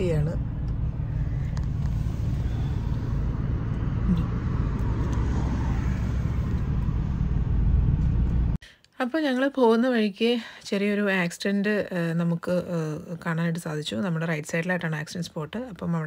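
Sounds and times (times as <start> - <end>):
car interior driving rumble: 0.0 - 8.6.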